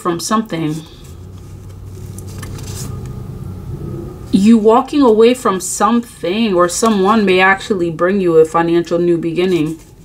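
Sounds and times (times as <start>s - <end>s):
low engine rumble: 0.5s - 9.2s
cards rustling: 0.9s - 3.2s.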